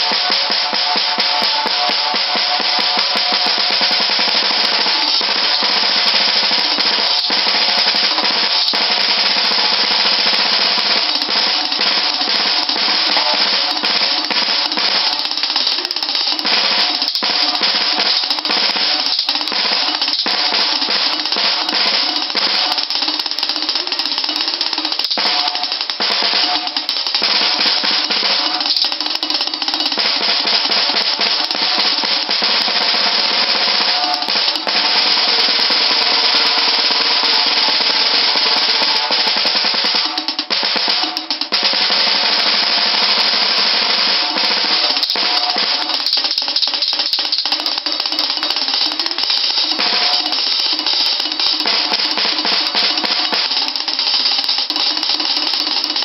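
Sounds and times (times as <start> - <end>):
drum kit rolls: 0.0 - 56.0.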